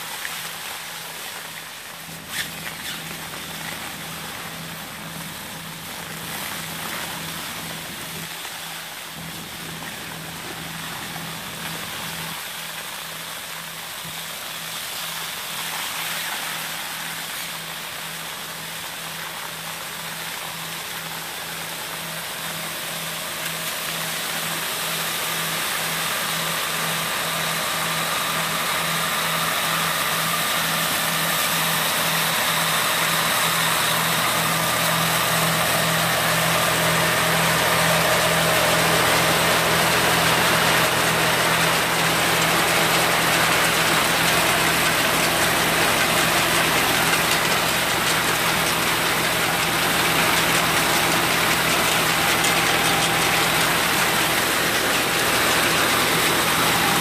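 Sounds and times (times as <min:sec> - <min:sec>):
harvester engine drone: 0:01.0 - 0:57.0.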